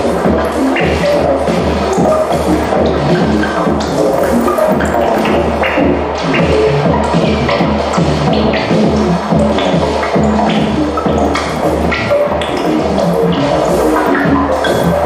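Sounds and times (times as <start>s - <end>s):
electronic blips and clicks: 0.0s - 15.0s
low synth bass pulse: 0.0s - 15.0s.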